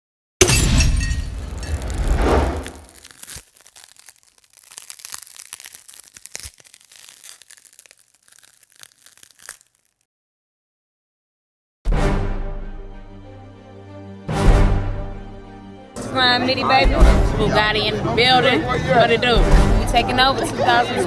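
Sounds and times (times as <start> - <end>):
loud crash: 0.4 - 3.1
faint scattered crackles: 1.5 - 10.1.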